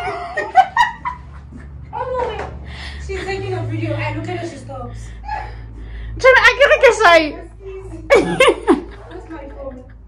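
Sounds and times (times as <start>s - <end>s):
woman laughing: 7.7s - 10.0s.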